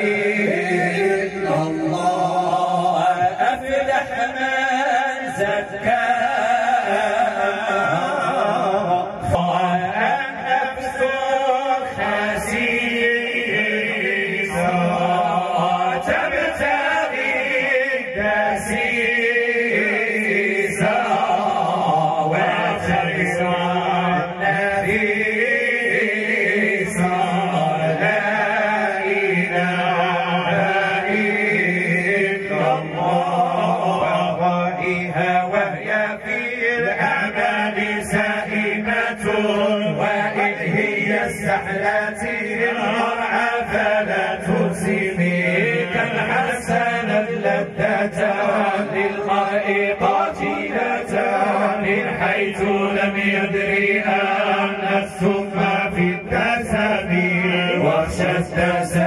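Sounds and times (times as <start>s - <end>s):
men chanting through microphones: 0.0s - 59.0s.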